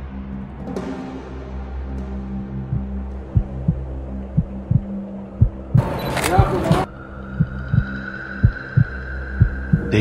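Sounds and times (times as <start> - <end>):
heartbeat thumps: 2.6 - 6.5, 7.3 - 9.9.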